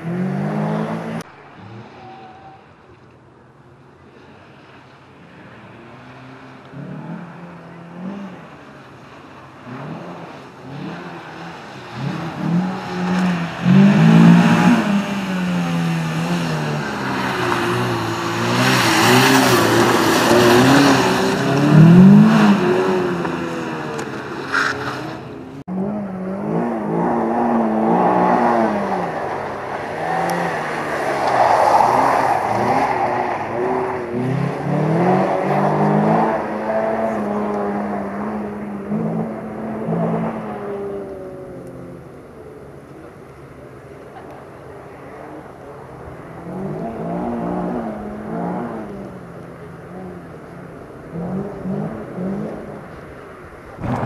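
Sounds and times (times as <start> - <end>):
rally car engine revving: 0.0 - 2.6, 9.6 - 42.3, 45.1 - 54.0.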